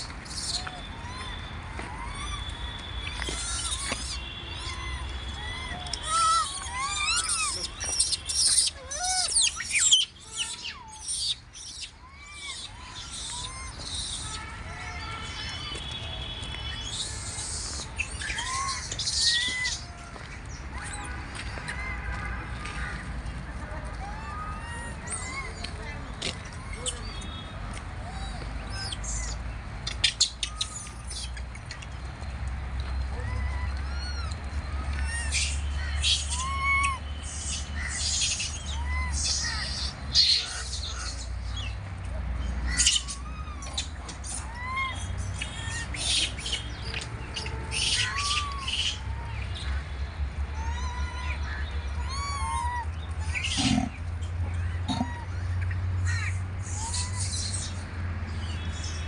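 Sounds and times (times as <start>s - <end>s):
harsh high-pitched bird calls: 0.0s - 14.5s, 15.2s - 19.8s, 28.6s - 31.4s, 33.0s - 41.8s, 42.6s - 49.9s, 54.6s - 57.9s
birds chirping: 0.0s - 23.8s, 24.5s - 59.0s.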